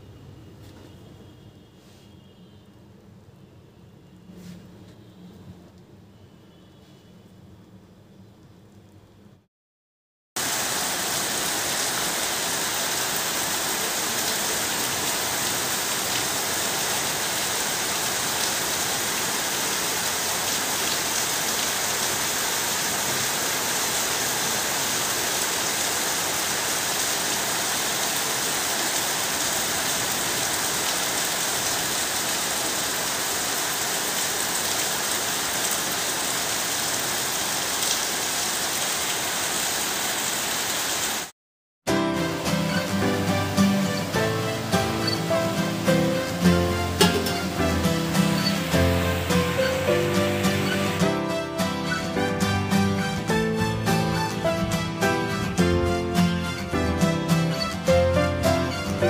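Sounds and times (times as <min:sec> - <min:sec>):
heavy rain pouring: 0:10.4 - 0:41.3, 0:41.9 - 0:59.0.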